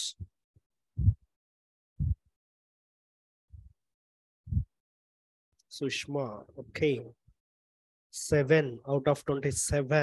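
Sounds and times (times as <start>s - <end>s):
dull low thumps: 1.0s - 1.3s, 2.0s - 2.3s, 4.5s - 4.8s.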